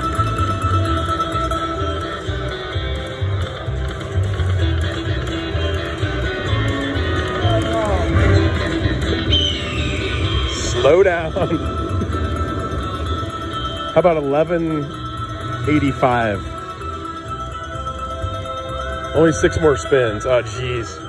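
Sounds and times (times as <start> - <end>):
low background rumble: 0.0 - 21.0
reel spin and win tally sounds: 0.0 - 21.0
slot machine bonus music: 0.0 - 21.0.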